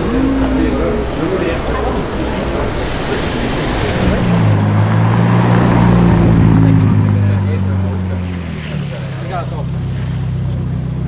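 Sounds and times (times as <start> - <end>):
people talking: 0.0 - 4.8, 5.8 - 10.1
car engine running low revs: 0.0 - 11.0.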